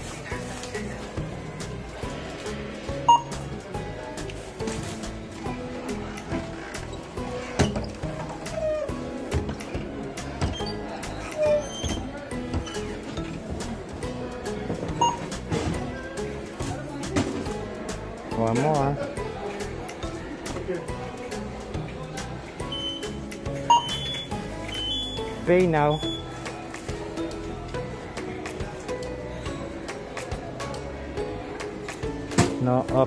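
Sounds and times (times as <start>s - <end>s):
background music: 0.0s - 33.0s
items being handled and bagged: 0.0s - 33.0s
self-checkout scanner beeps: 3.0s - 3.6s, 10.3s - 13.4s, 14.8s - 15.5s, 22.6s - 26.4s.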